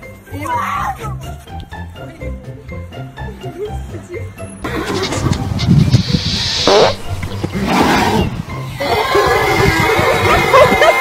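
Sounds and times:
horse squealing: 4.7s - 11.0s.

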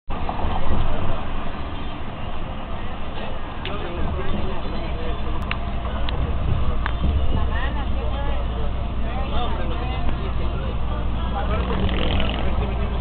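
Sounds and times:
vehicle engine and tyre rumble: 0.1s - 13.0s.

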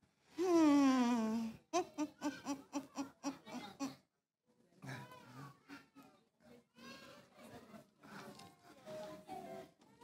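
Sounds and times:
woman laughing: 0.4s - 4.0s.

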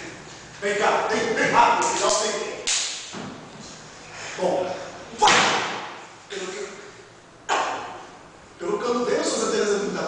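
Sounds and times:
sharp crack echoing: 5.2s - 6.1s.

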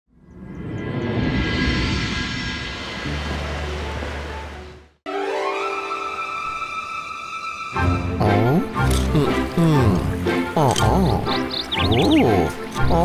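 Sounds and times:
cartoon soundtrack music: 3.0s - 13.0s.

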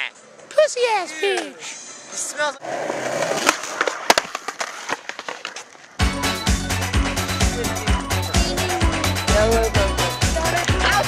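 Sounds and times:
skateboard wheels rolling on concrete: 2.2s - 11.0s
skateboard clacks: 2.8s - 6.0s
music with heavy beat: 6.0s - 11.0s.

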